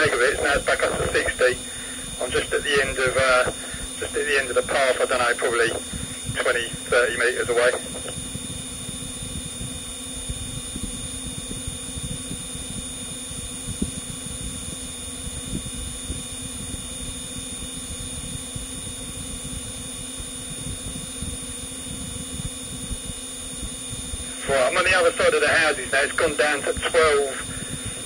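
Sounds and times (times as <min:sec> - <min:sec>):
drone propellers whining at idle: 0:00.0 - 0:28.0.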